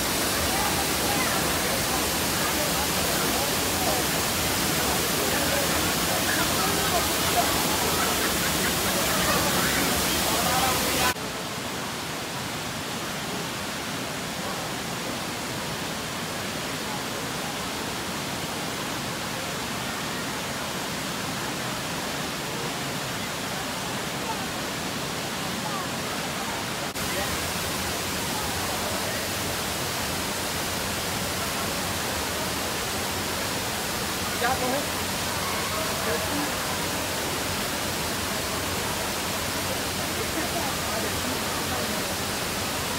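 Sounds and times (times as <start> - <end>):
faint voices: 0.0 - 12.0, 16.5 - 42.9
waterfall rushing: 0.0 - 42.9.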